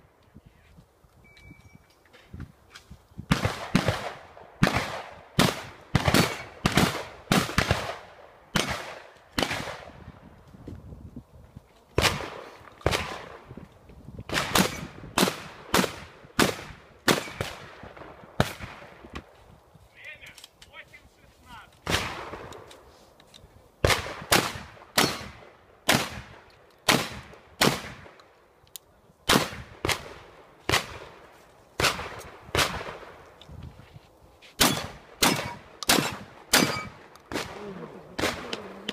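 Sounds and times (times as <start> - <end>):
shotgun shots: 3.3 - 10.0, 12.0 - 13.4, 14.3 - 18.9, 21.8 - 22.5, 23.8 - 28.1, 29.3 - 31.2, 31.8 - 33.1, 34.6 - 37.6, 38.2 - 38.7.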